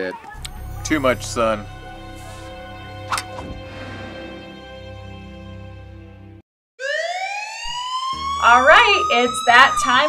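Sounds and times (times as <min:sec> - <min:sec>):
closing film music: 0:00.4 - 0:06.4.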